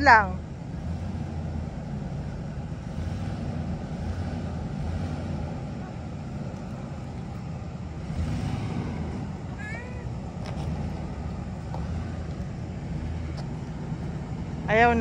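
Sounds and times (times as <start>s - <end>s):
car engine running low: 0.0s - 15.0s.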